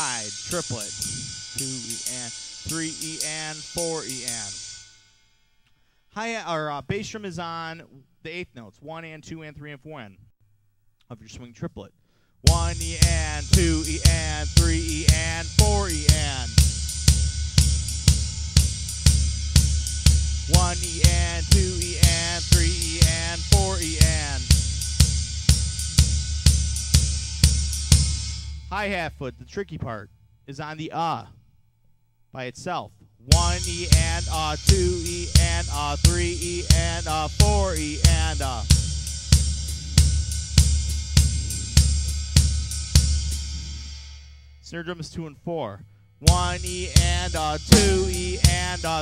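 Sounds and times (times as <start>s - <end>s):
cymbal ringing: 0.0s - 5.7s, 47.7s - 49.0s
ride cymbal pattern: 0.0s - 5.8s, 12.5s - 31.0s, 33.3s - 44.6s, 46.2s - 49.0s
bass drum thumps: 12.5s - 26.6s, 33.3s - 39.1s, 47.6s - 49.0s.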